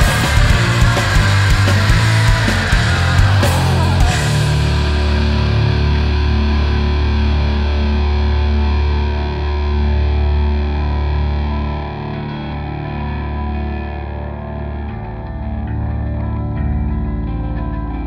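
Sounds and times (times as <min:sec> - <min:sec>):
deep low drone: 0:00.0 - 0:18.0
distorted electric guitar chord: 0:00.0 - 0:18.0.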